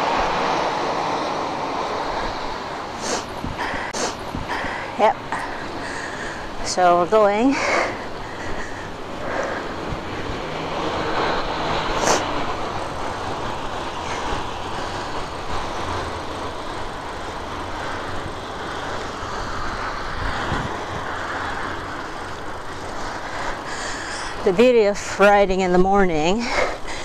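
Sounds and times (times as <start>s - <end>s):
bicycle tyres rolling on road: 0.0s - 27.0s
wind over microphone: 1.4s - 27.0s.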